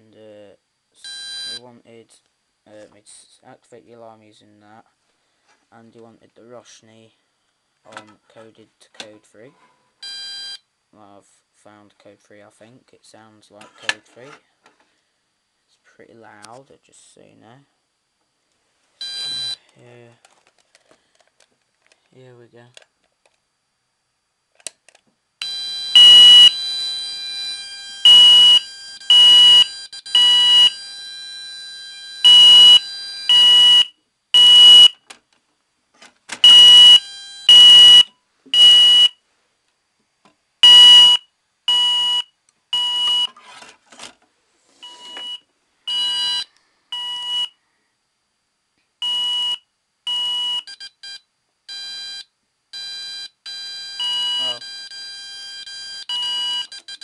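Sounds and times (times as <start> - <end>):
fire alarm beeps: 25.4 - 35.0, 36.4 - 39.2, 40.6 - 43.3, 44.8 - 47.6, 49.0 - 57.0
faint steady tone: 44.7 - 57.0.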